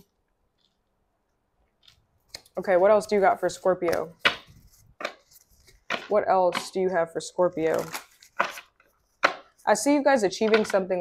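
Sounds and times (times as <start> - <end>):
cards shuffled by hand: 1.8 - 6.7, 7.6 - 9.6
cards slapping: 3.8 - 6.8, 7.6 - 9.6.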